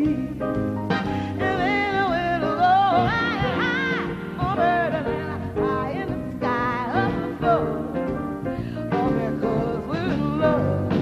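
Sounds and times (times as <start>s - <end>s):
big band accompaniment: 0.0s - 11.0s
woman singing jazz: 0.0s - 11.0s.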